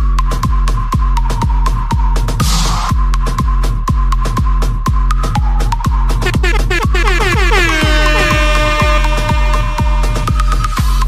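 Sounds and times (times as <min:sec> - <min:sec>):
horn-like synth blast: 0:06.2 - 0:10.6.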